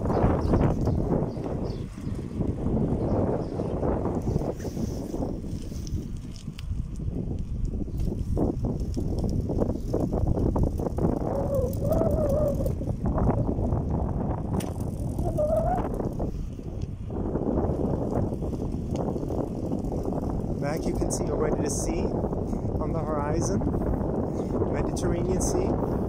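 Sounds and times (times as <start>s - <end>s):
bicycle tyres rumbling on dirt: 0.0s - 26.0s
wind on microphone: 0.0s - 26.0s.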